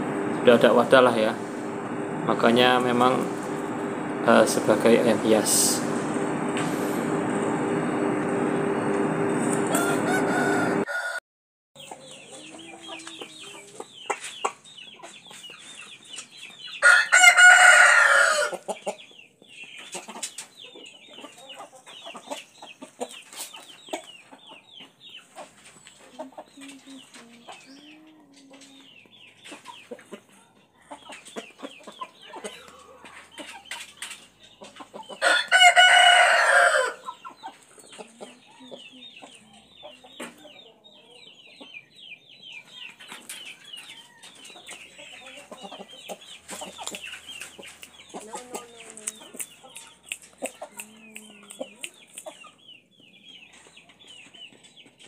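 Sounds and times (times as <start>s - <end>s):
rooster crowing: 1.2s - 11.2s, 16.8s - 18.6s, 35.2s - 37.1s.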